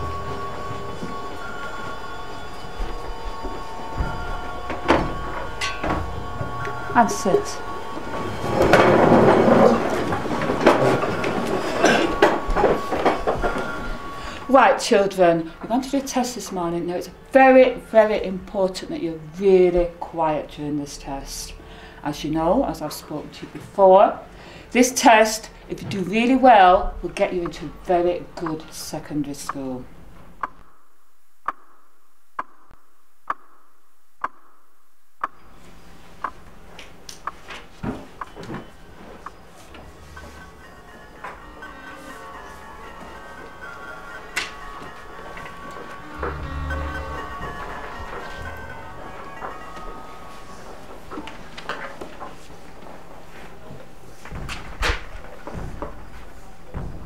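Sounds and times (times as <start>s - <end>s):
chairs and desks scraping: 0.0s - 16.3s, 37.4s - 57.0s
clock ticking: 25.2s - 30.8s, 31.4s - 33.6s, 34.2s - 34.6s, 35.2s - 35.5s, 36.2s - 37.4s, 38.1s - 38.5s, 39.2s - 42.4s.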